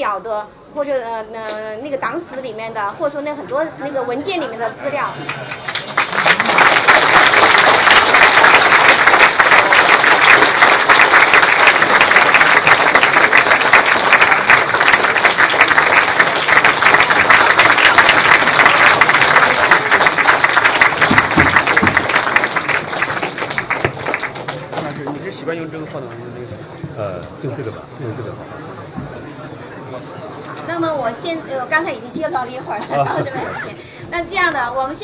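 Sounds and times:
audience applauding: 5.1s - 26.3s.

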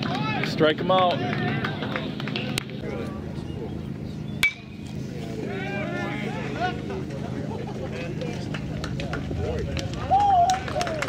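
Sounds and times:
metal bat hitting ball: 4.4s - 4.8s
people shouting: 5.4s - 6.9s.

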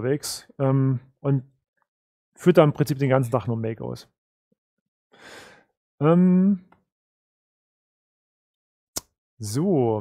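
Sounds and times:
man breathing: 5.1s - 5.8s.

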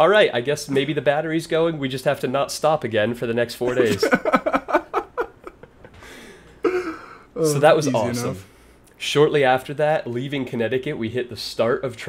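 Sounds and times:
men laughing: 3.7s - 7.2s.

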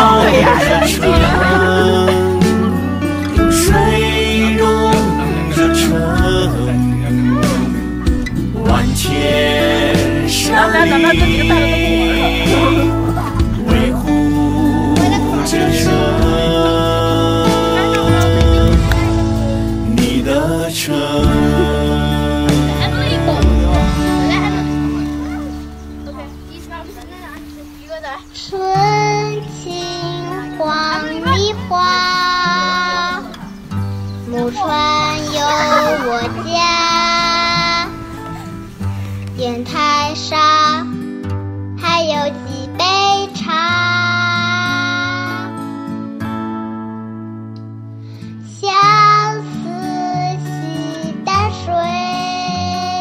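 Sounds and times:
person singing long held notes: 0.0s - 7.7s, 8.6s - 24.0s
low accompaniment: 0.0s - 27.0s
sung melody with instruments: 0.0s - 53.0s.

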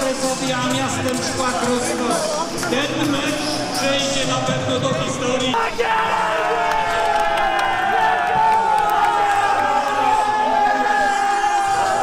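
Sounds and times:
loud held cry: 5.5s - 12.0s
men shouting and cheering: 5.5s - 12.0s.

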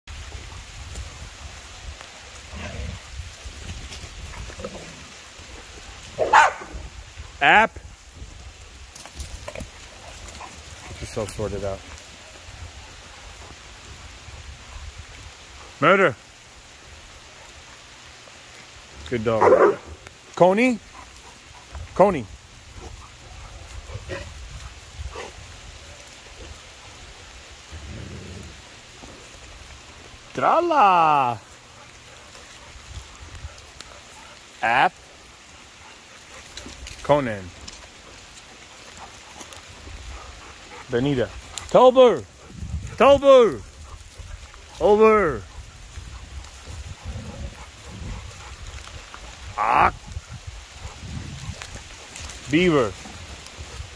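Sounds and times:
dogs moving through undergrowth: 0.1s - 53.9s
light rain hissing: 0.1s - 53.9s.

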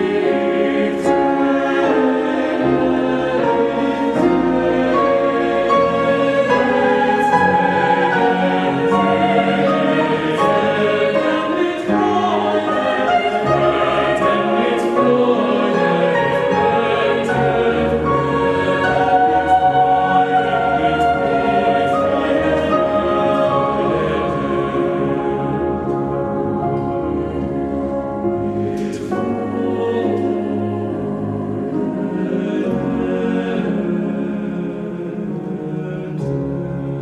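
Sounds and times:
grand piano accompaniment: 0.0s - 37.0s
mixed choir singing: 0.0s - 37.0s.

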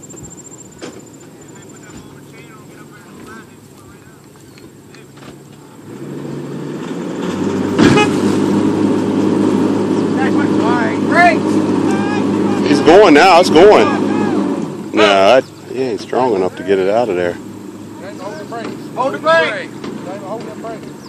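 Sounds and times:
high insect trill: 0.0s - 2.0s
truck engine revving under load: 0.0s - 21.0s
short sharp loud bang: 7.8s - 8.2s.

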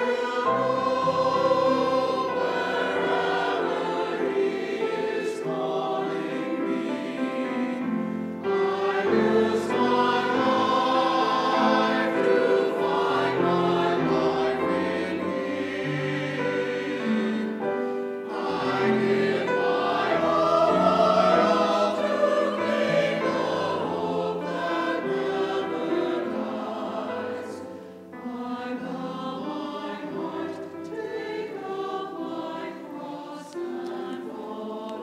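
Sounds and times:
church choir singing in parts: 0.0s - 35.0s
grand piano accompaniment: 0.0s - 35.0s.

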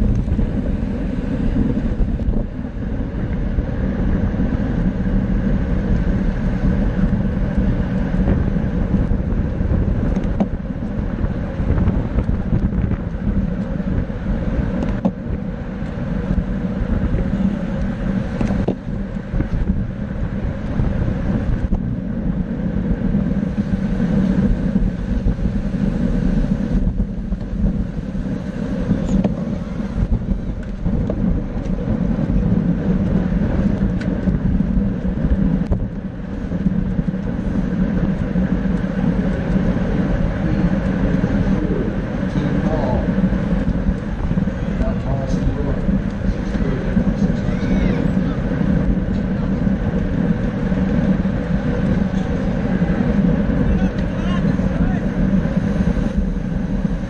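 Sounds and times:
wind noise on microphone: 0.0s - 57.0s.

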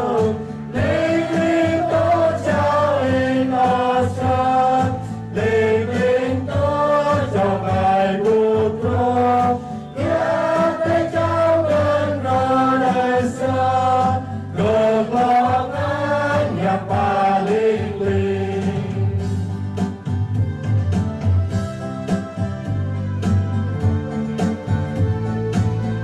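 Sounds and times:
choir singing a hymn: 0.0s - 19.4s
singers breathing: 4.9s - 5.3s, 9.6s - 10.0s
electronic keyboard chords: 19.2s - 26.0s.

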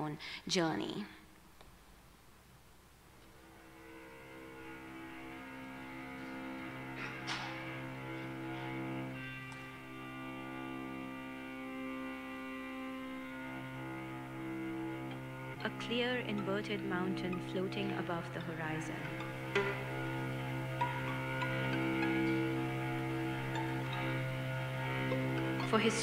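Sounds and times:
string quartet playing held chords: 3.3s - 26.0s.

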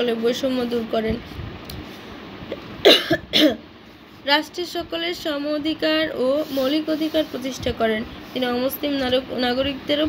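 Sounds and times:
woman coughing: 2.5s - 3.7s.

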